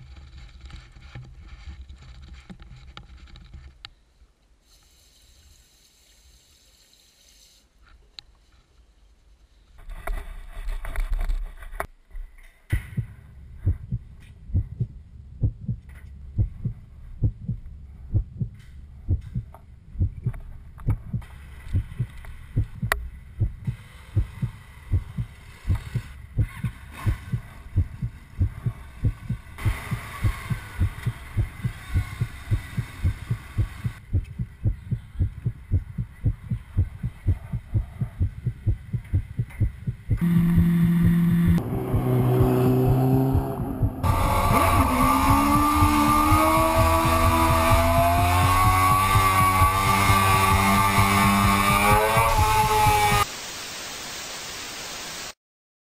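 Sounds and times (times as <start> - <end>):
high hiss with wavering tones: 4.6 - 7.9
low heartbeat-like thumping: 12.7 - 53.2
engine and music soundtrack: 40.2 - 53.2
television static hiss: 53.2 - 55.4.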